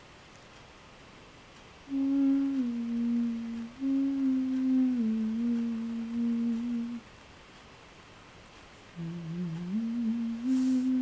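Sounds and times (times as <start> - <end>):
person humming: 1.9 - 7.0, 9.0 - 11.0.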